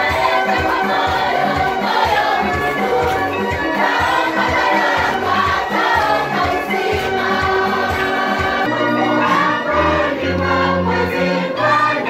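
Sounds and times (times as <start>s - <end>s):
steady beat: 0.0s - 8.7s
children's choir singing a hymn: 0.0s - 12.0s.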